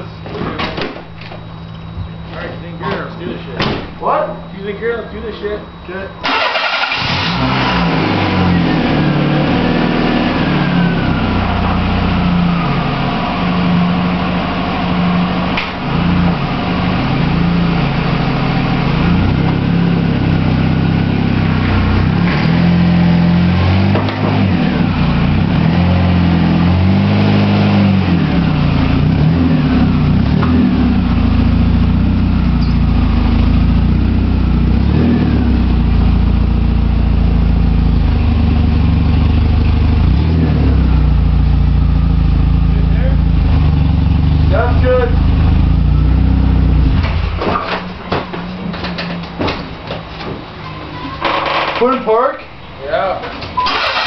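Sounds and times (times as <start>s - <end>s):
car engine running under load: 0.0s - 54.0s.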